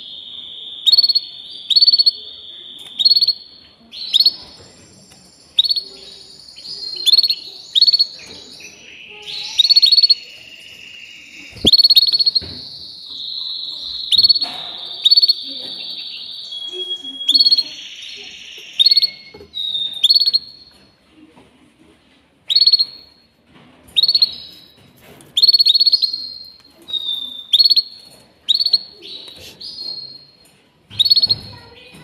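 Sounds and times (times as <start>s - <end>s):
canary singing: 0.0s - 21.0s, 22.5s - 32.0s.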